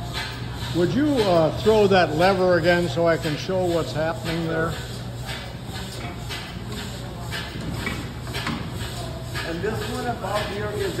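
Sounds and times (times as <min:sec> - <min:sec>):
belts clacking over pulleys: 0:00.0 - 0:11.0.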